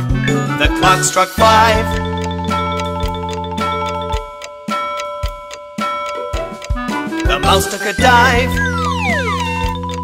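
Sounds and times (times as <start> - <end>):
instrumental children's song: 0.0 - 10.0.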